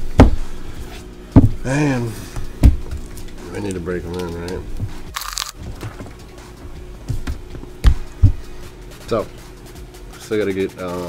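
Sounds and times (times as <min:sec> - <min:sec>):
book knocking on desk: 0:01.4 - 0:01.6, 0:02.6 - 0:03.0, 0:07.1 - 0:08.5.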